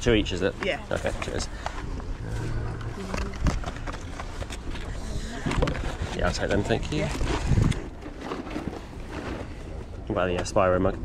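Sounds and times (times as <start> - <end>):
low rumble: 0.9 - 11.0.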